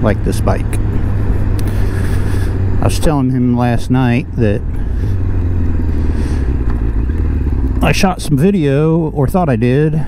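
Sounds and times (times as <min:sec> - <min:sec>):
motorcycle engine hum: 0:00.0 - 0:10.0
wind and road noise: 0:00.0 - 0:10.0.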